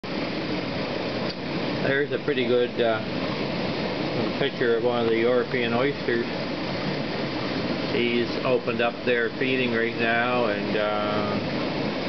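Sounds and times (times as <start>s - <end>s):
machinery hum and hiss: 0.0s - 12.0s
man speaking: 1.8s - 3.0s, 8.0s - 11.4s.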